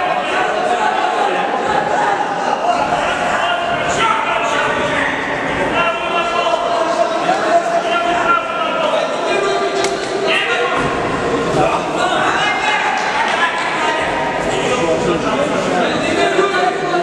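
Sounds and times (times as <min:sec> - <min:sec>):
voices calling out in hall: 0:00.0 - 0:17.0.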